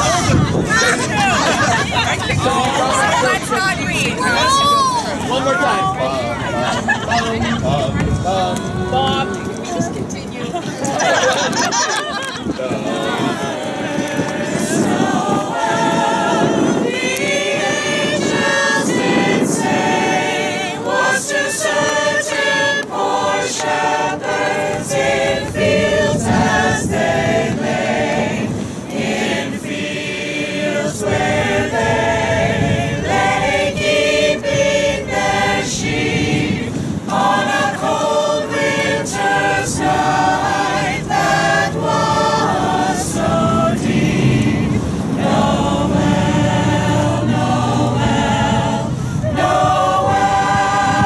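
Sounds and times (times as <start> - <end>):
mixed choir singing a carol: 0.0 - 51.0.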